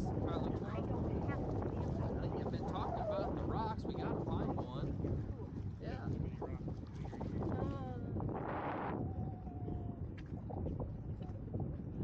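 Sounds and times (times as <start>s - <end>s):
people talking: 0.0s - 8.2s
wind buffeting microphone: 0.0s - 12.0s.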